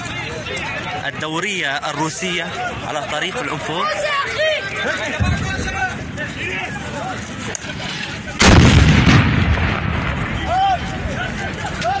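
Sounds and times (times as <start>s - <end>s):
loud explosion blast: 8.4s - 11.1s.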